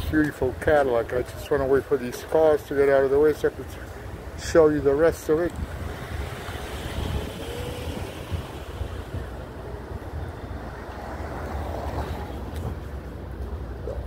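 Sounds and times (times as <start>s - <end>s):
car engines running: 0.2s - 13.9s.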